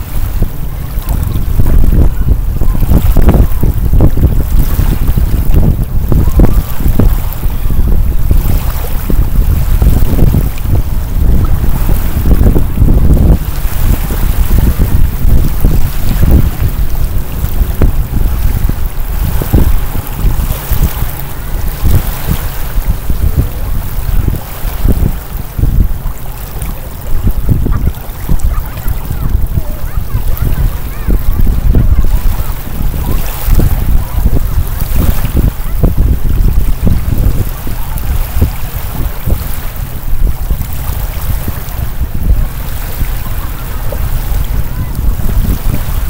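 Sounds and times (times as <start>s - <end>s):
small waves lapping at shore: 0.0s - 46.0s
wind buffeting microphone: 0.0s - 46.0s.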